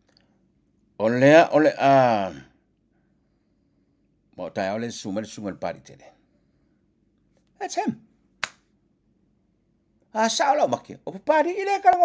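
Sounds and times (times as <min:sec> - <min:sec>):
finger snap: 0:08.4 - 0:08.7.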